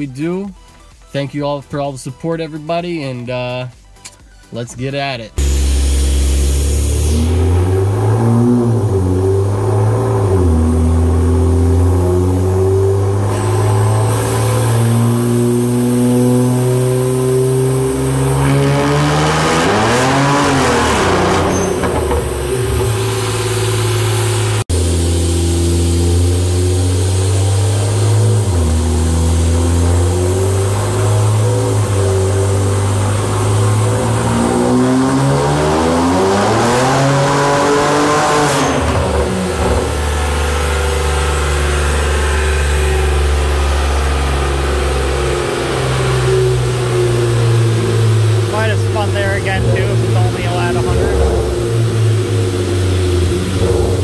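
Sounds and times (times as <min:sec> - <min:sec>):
car engine revving on a dyno: 0:05.4 - 0:54.0.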